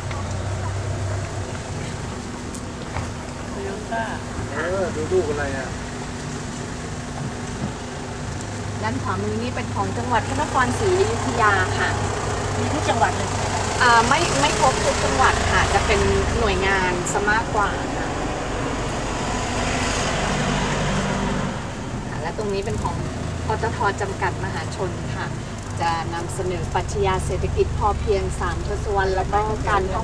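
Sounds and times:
road noise: 0:00.0 - 0:30.0
vehicle engine hum: 0:00.0 - 0:30.0.

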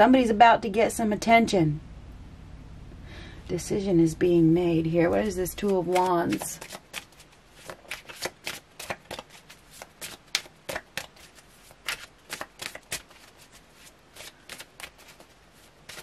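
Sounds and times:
cards being shuffled: 0:05.6 - 0:16.0.

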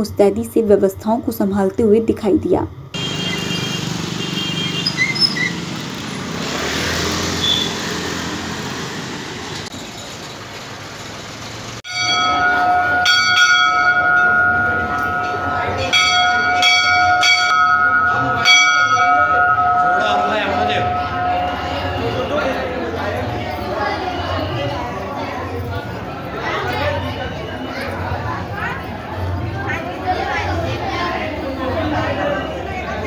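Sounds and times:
street noise: 0:00.0 - 0:33.0
temple bells ringing: 0:11.9 - 0:33.0
murmur of crowd: 0:12.1 - 0:33.0.

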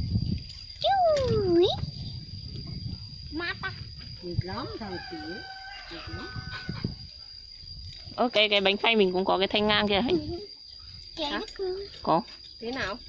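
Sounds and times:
rooster crowing: 0:04.6 - 0:07.1.

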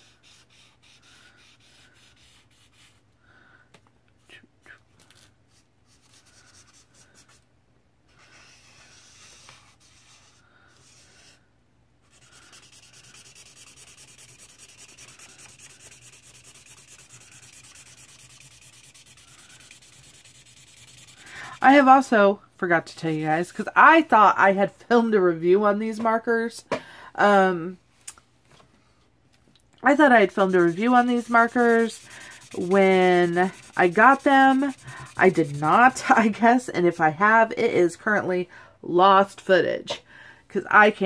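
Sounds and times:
marker scratching on paper: 0:00.0 - 0:03.0, 0:08.1 - 0:11.4, 0:12.0 - 0:21.8, 0:29.9 - 0:36.2.

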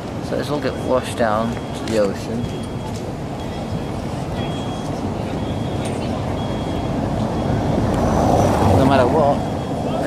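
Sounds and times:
street traffic rumble: 0:00.0 - 0:10.0
vehicle approaching: 0:00.0 - 0:10.0.

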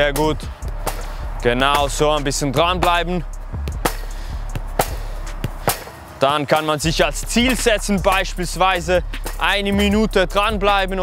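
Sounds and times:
football thudding on rebounder: 0:00.6 - 0:01.1, 0:03.7 - 0:06.0.

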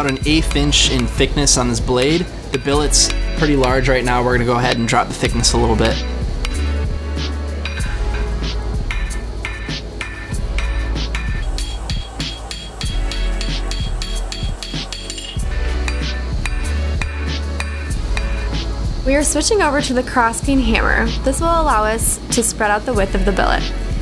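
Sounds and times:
hammer striking metal on anvil: 0:00.0 - 0:06.7, 0:07.6 - 0:18.6
background music with heavy bass: 0:00.0 - 0:22.4, 0:23.0 - 0:24.0.

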